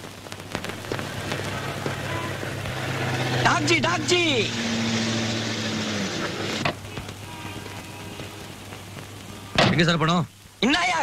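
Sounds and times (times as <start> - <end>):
faint crackles: 0.0 - 11.0
steady hiss: 0.0 - 11.0.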